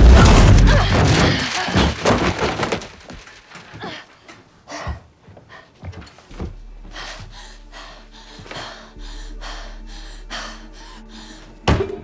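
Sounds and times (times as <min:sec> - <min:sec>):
low musical drone: 0:06.6 - 0:12.0.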